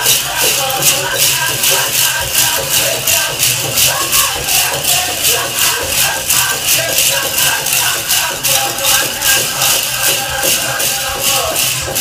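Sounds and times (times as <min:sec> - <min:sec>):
metal cones clinking: 0:00.0 - 0:12.0
powwow drum music: 0:00.0 - 0:12.0.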